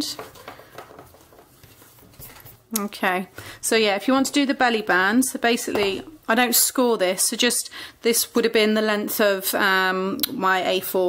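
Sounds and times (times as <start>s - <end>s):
rustling of card and ribbon: 0.0s - 2.7s.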